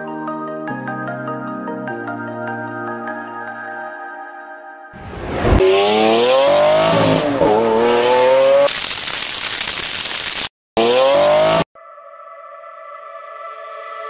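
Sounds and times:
car engine revving: 5.0s - 8.9s, 10.8s - 11.7s.

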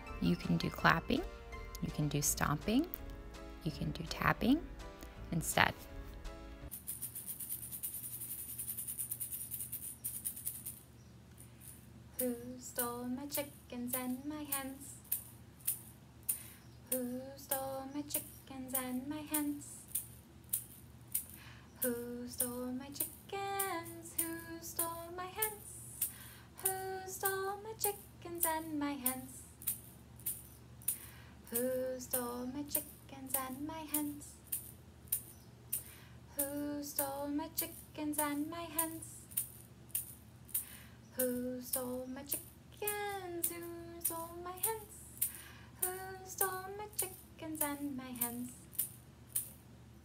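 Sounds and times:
person singing: 0.0s - 3.1s, 45.8s - 48.5s
egg shaker rattling: 6.7s - 49.6s.

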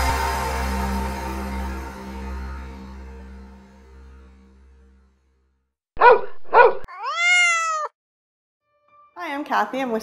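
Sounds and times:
cat meowing: 6.9s - 7.9s
cat short sharp calls: 6.9s - 7.9s.

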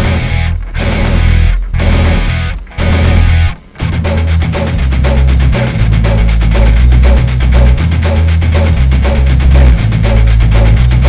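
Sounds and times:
bass guitar: 0.0s - 11.0s
electric guitar: 0.0s - 11.0s
fast drum beat: 0.0s - 11.0s.

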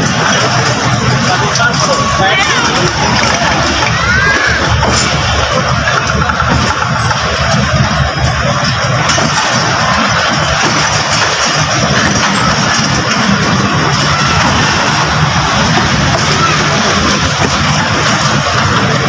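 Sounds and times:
train wheels rolling on rails: 0.0s - 19.0s.

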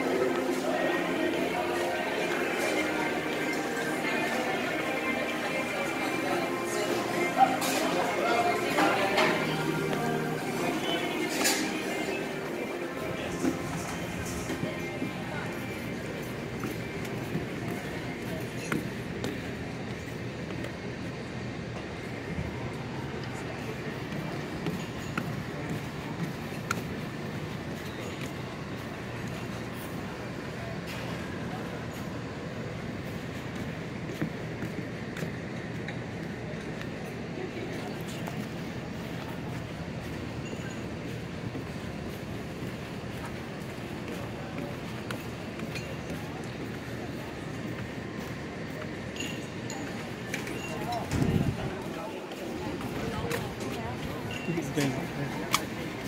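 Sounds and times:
murmur of voices: 0.0s - 56.0s
light ticks and clinks: 49.1s - 51.2s.

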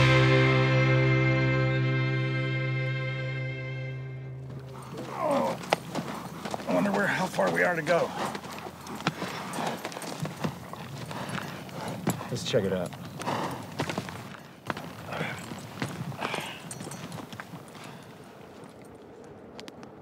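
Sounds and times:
hooves clopping on rocky ground: 4.4s - 20.0s.

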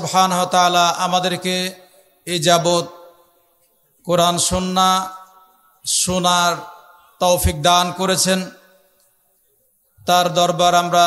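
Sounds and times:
man chanting a sermon: 0.0s - 3.1s, 4.1s - 8.8s, 10.0s - 11.0s.

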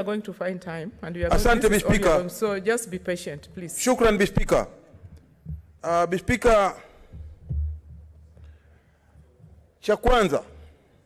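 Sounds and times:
low thump: 7.2s - 8.1s.

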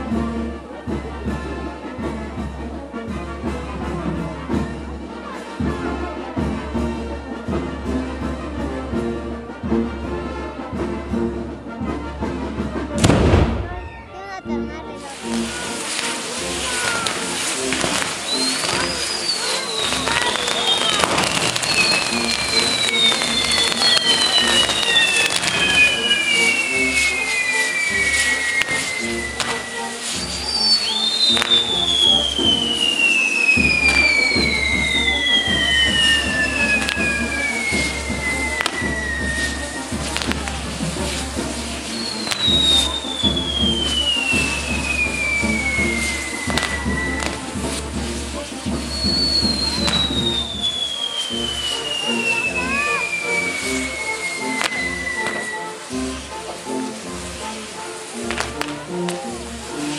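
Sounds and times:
music: 0.0s - 59.9s
fireworks crackling and popping: 9.8s - 59.9s
whistling fireworks: 13.0s - 14.2s, 15.0s - 59.9s.

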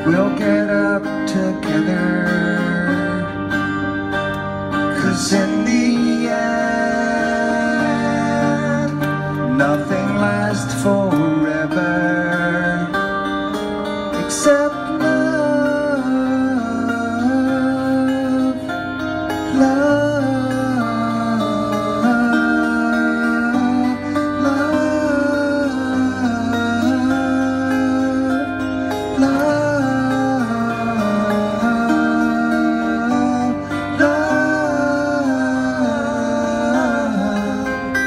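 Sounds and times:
acoustic guitar: 0.0s - 38.0s
person singing: 4.9s - 13.1s, 14.1s - 38.0s.

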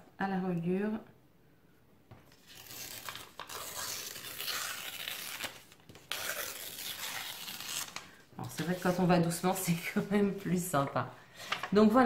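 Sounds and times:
paper tearing slowly: 2.3s - 10.1s.

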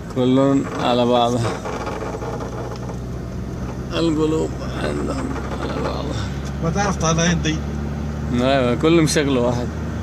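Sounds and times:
car engine and tyres droning: 0.0s - 10.0s.

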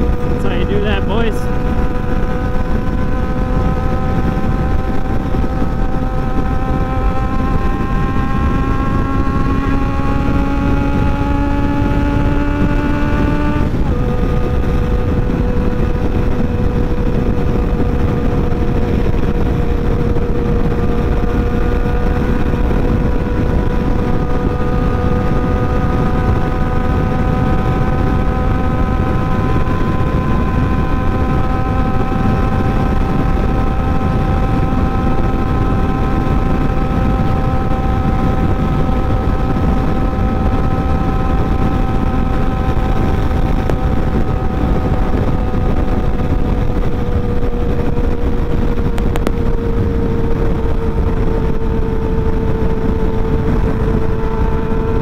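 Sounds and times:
motorcycle engine accelerating: 0.0s - 55.0s
wind rush on microphone: 0.0s - 55.0s.

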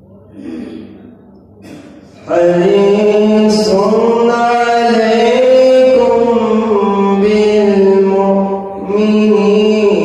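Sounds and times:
man chanting recitation into microphone: 2.1s - 10.0s.

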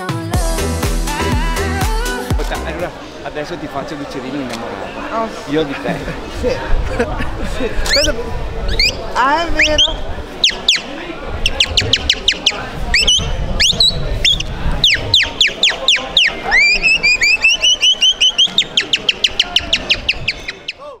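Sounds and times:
man whistling birdsong imitation: 11.6s - 20.8s.

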